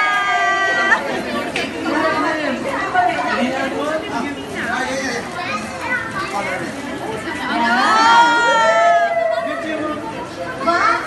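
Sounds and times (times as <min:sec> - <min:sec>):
adults and children chattering: 0:00.0 - 0:11.0.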